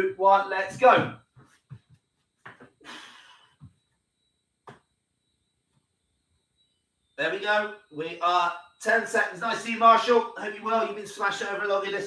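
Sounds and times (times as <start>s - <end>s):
man exhaling hard: 2.8s - 3.5s.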